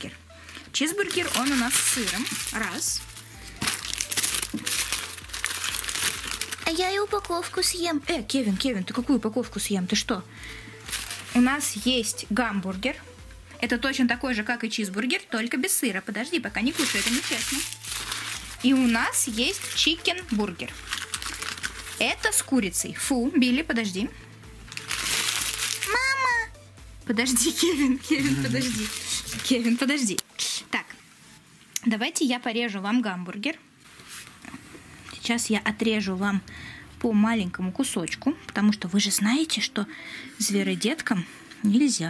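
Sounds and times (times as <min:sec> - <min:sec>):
paper wrapper crinkling: 0:00.5 - 0:07.4, 0:10.8 - 0:11.6, 0:16.6 - 0:22.3, 0:24.7 - 0:26.2, 0:28.1 - 0:30.0.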